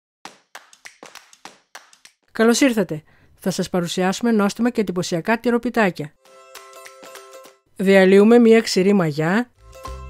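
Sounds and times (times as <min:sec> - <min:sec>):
sharp clap-like hits: 0:00.3 - 0:02.2.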